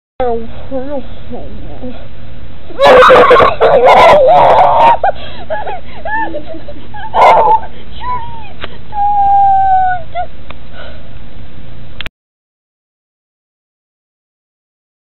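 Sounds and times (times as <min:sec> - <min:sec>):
whimpering and wailing cries: 0:02.7 - 0:10.3.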